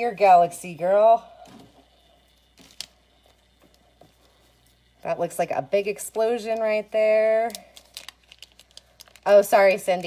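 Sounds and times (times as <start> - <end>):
soft handling sounds: 1.4 - 5.0.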